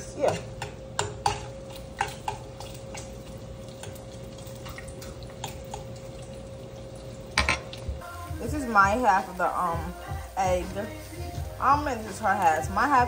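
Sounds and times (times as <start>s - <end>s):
utensils and dishes clinking: 0.0s - 8.0s
steady hum: 0.0s - 13.0s.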